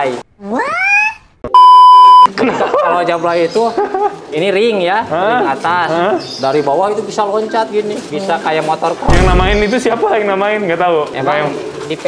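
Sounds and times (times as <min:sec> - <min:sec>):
steady test tone beep: 0:01.5 - 0:02.3.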